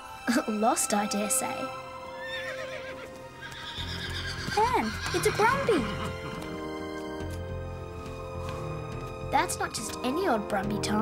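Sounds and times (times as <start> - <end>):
soft background music: 0.0 - 11.0
horse whinnying: 2.1 - 6.8.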